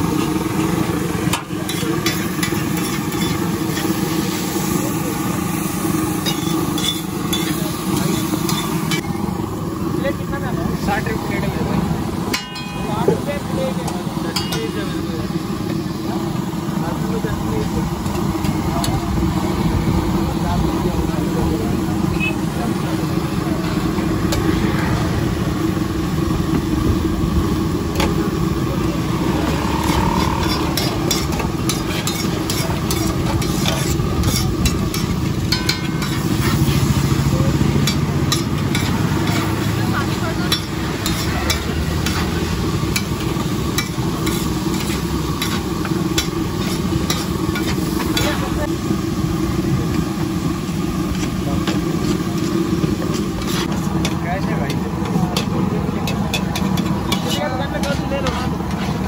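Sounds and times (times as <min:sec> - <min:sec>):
vegetables sizzling on a griddle: 0:00.0 - 0:26.9, 0:27.5 - 0:59.0
metal spatula scraping griddle: 0:29.3 - 0:37.1, 0:43.8 - 0:48.4, 0:53.2 - 0:54.2, 0:56.4 - 0:59.0.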